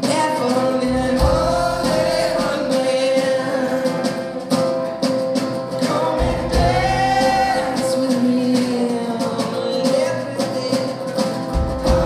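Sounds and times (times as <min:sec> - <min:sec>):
bass guitar: 0:00.0 - 0:08.4, 0:11.2 - 0:12.0
acoustic guitar: 0:00.0 - 0:12.0
person singing: 0:00.0 - 0:12.0.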